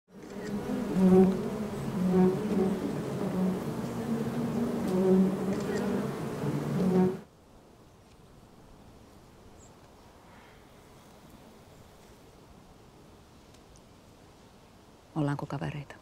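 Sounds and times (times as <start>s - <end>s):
honeybees buzzing: 0.1s - 7.3s.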